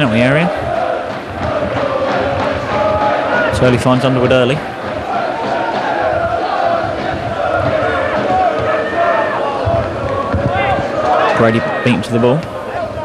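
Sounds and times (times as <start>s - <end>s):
crowd chanting: 0.0s - 13.0s
crowd shouting: 0.0s - 13.0s.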